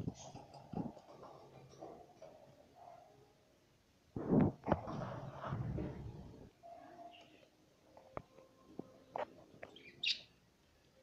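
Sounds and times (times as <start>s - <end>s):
budgerigar chirping: 9.8s - 10.3s.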